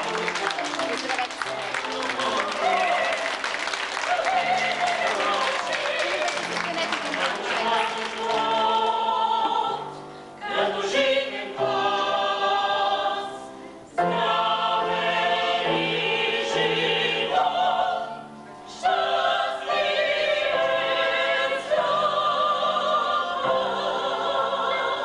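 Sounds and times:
choir singing held chords: 0:01.5 - 0:25.0.

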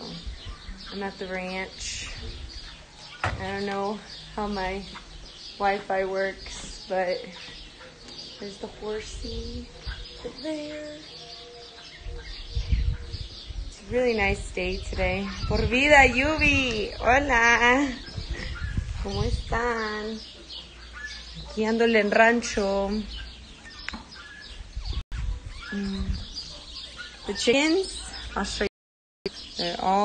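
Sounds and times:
birds calling: 0:00.0 - 0:28.7, 0:29.3 - 0:30.0
low rumble on microphone: 0:12.0 - 0:20.3, 0:24.5 - 0:26.5.

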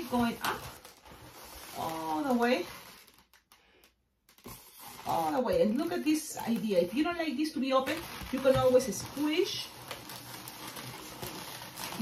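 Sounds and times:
faint balloon clicks and rubs: 0:00.0 - 0:12.0.

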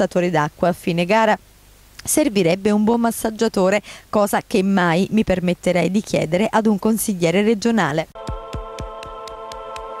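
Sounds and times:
deep pulsing beats with ticks: 0:08.2 - 0:09.9
held synth chord: 0:08.2 - 0:10.0.

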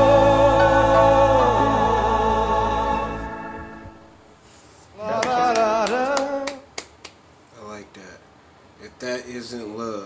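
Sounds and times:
sharp claps or clicks: 0:05.2 - 0:07.2.

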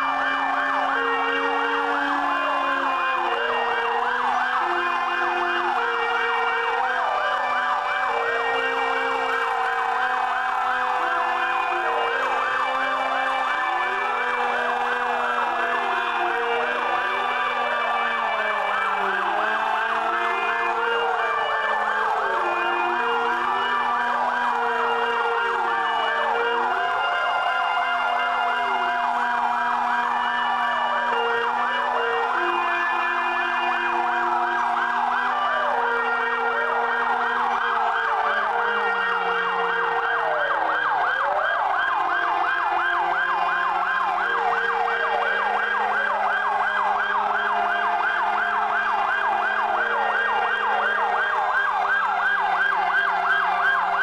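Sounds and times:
sirens wailing: 0:00.0 - 0:54.0.

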